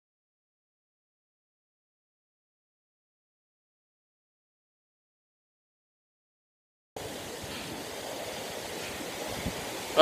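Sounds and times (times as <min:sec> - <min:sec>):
creek rushing over rocks: 0:07.0 - 0:10.0.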